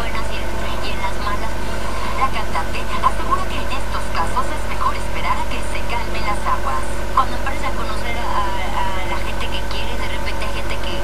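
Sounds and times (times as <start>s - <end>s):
steady low hum: 0.0s - 11.0s
woman speaking: 0.0s - 11.0s.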